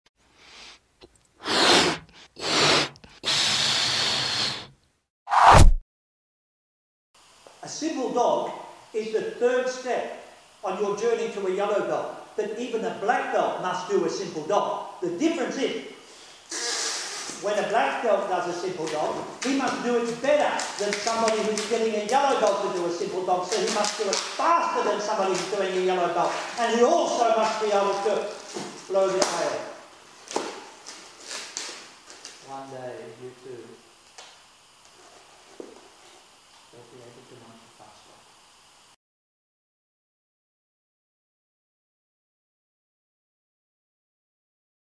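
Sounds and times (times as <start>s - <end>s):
balloon rubbing hiss: 0.3s - 5.8s, 16.1s - 17.6s, 18.8s - 29.8s
hissing air bursts: 1.4s - 4.7s, 16.0s - 17.5s.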